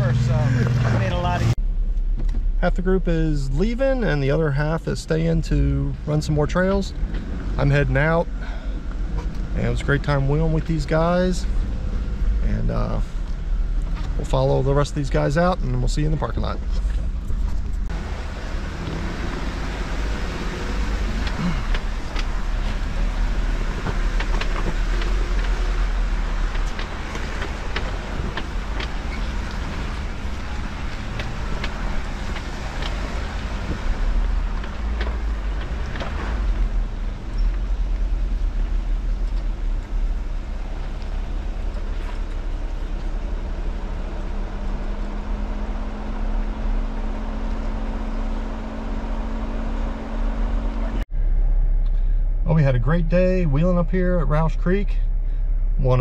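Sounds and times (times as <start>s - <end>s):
low engine rumble: 0.0s - 56.0s.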